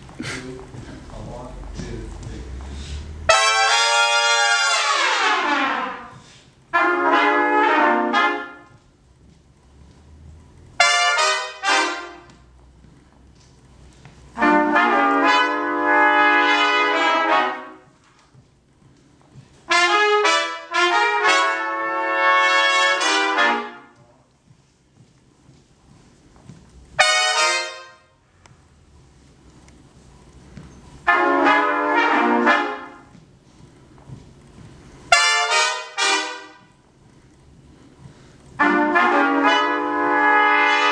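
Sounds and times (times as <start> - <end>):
trumpet section playing: 3.1 - 8.8, 10.8 - 12.5, 14.3 - 18.2, 19.6 - 24.0, 27.0 - 28.4, 31.0 - 33.2, 35.1 - 36.8, 38.6 - 40.9.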